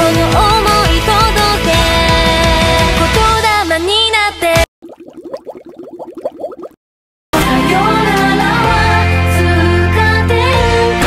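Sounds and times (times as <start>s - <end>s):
rising bubbling blips: 4.8s - 6.8s.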